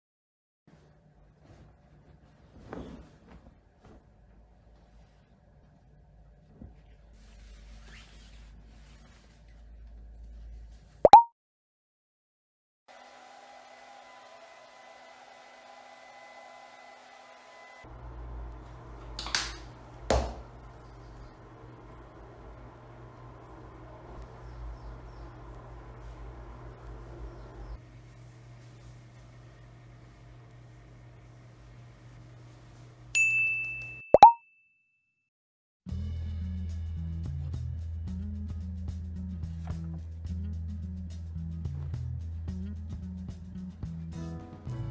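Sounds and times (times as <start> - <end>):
double plop pop effect: 11.0 - 11.3, 34.1 - 34.4
bright chime ding: 33.2 - 34.8
background music: 40.3 - 44.9.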